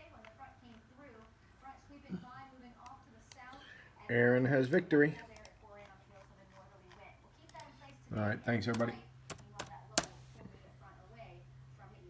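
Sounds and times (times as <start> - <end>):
person speaking: 4.0 - 10.5
soft computer clicks: 5.3 - 7.7, 8.7 - 10.3.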